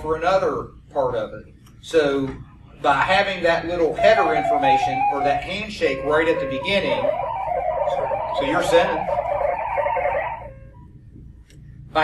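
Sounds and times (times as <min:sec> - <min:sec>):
modem data tones: 0:04.0 - 0:11.0.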